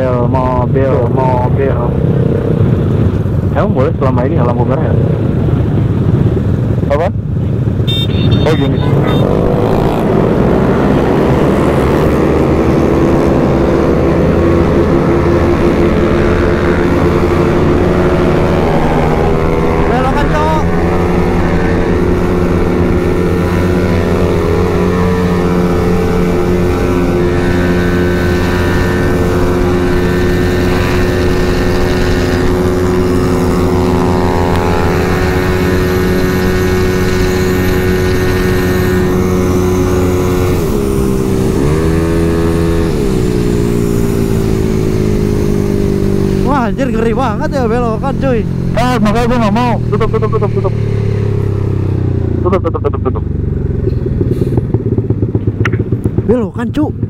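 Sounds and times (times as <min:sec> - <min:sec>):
scooter engine running at high speed: 0:04.8 - 0:57.0.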